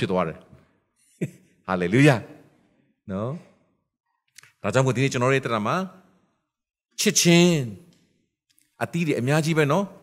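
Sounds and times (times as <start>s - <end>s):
man speaking into a microphone: 0.0s - 0.6s, 1.7s - 3.6s, 4.4s - 6.1s, 6.9s - 8.0s, 8.6s - 10.0s.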